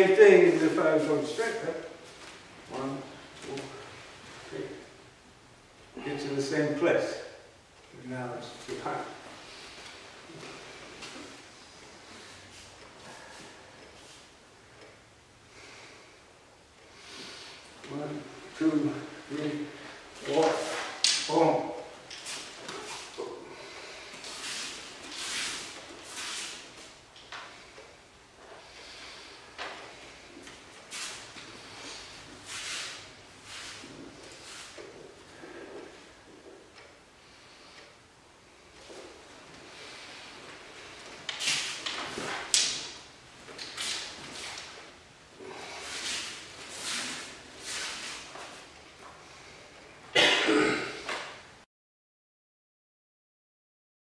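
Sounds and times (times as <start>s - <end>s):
bare feet moving on mats: 17.8s - 37.8s, 38.5s - 49.8s.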